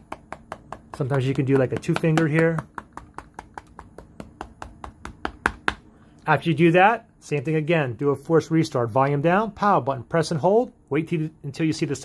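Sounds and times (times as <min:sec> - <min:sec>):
fingertips tapping on glass: 0:00.0 - 0:05.8.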